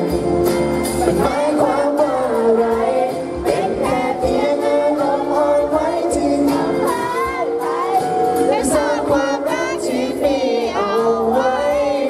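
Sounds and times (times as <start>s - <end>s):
young man singing into microphone: 1.0s - 12.0s.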